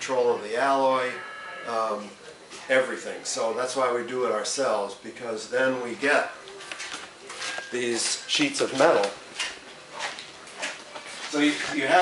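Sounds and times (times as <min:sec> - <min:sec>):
shop background noise: 0:00.0 - 0:04.5, 0:05.6 - 0:12.0.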